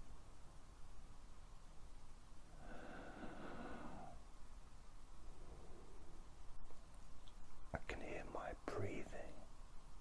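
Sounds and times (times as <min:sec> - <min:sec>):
person breathing slowly: 0:02.5 - 0:04.3, 0:05.2 - 0:06.4.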